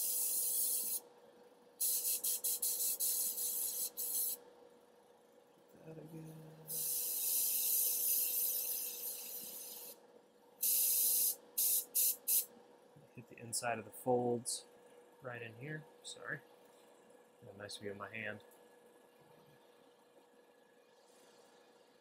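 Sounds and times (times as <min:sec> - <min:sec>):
airbrush spraying hiss: 0:00.0 - 0:01.0, 0:01.8 - 0:04.4, 0:06.7 - 0:10.0, 0:10.6 - 0:12.5
faint steady hum: 0:00.0 - 0:22.0.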